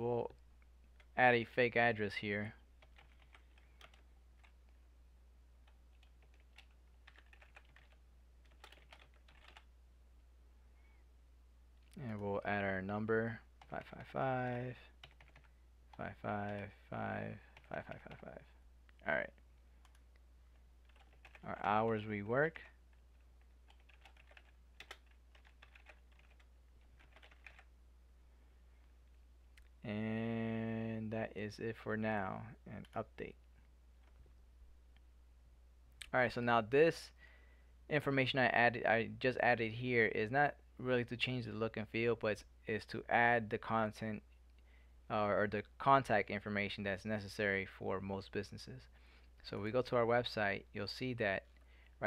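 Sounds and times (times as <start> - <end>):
steady low hum: 0.0 - 52.0
typing on computer keyboard: 2.8 - 4.6, 5.7 - 9.7, 15.0 - 15.5, 17.6 - 18.3, 20.8 - 22.0, 22.9 - 27.7.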